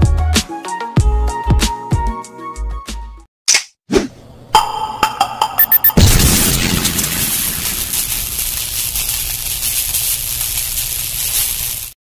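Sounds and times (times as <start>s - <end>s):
steady hiss: 6.9s - 12.0s.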